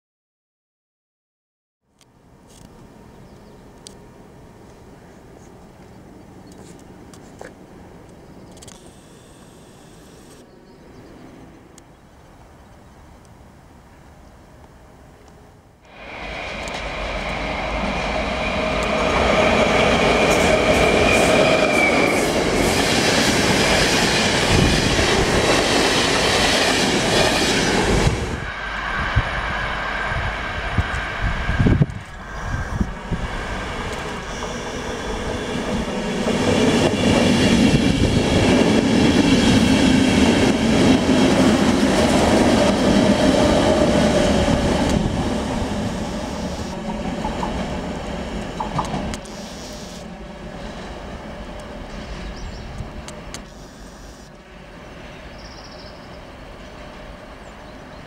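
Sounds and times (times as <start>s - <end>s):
train whine: 2.1s - 58.0s
train wheels on rails: 2.5s - 10.4s, 15.9s - 58.0s.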